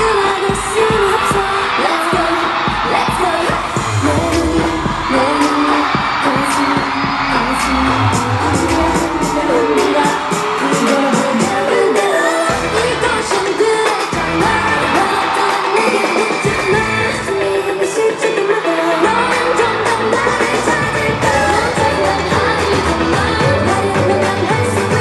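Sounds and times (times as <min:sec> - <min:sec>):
women singing over pop music: 0:00.0 - 0:25.0.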